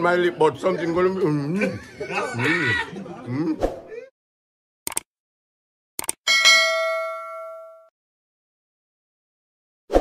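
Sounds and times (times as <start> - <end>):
notification bell ding: 6.3 - 7.9.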